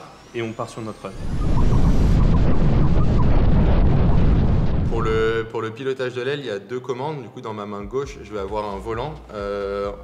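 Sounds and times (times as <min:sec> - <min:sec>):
wind buffeting microphone: 0:01.2 - 0:05.4.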